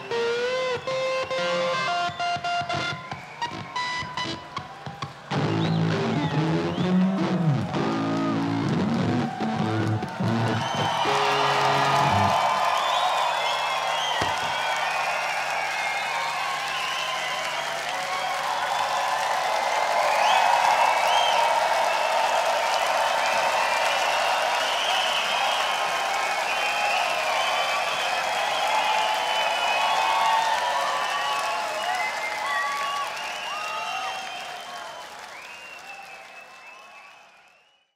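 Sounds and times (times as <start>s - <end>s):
electric guitar and bass playing: 0.0s - 4.6s, 5.3s - 12.4s
crowd cheering and clapping: 0.0s - 37.9s.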